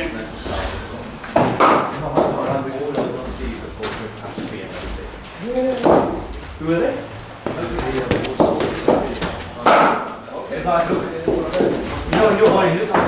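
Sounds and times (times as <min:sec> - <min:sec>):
indistinct voices: 0:00.0 - 0:13.0.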